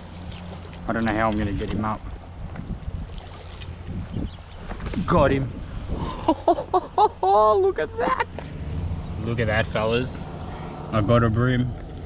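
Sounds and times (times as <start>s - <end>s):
water splashes: 0.0s - 6.4s
wind buffeting microphone: 1.4s - 6.4s.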